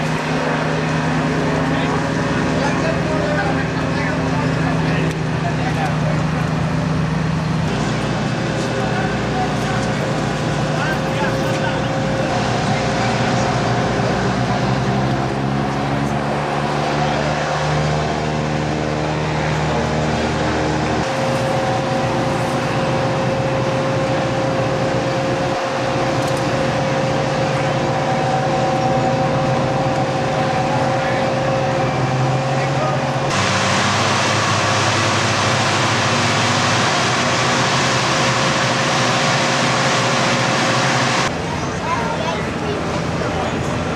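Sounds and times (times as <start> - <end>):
engine drone: 0.0 - 43.9
high steady whine: 0.0 - 43.9.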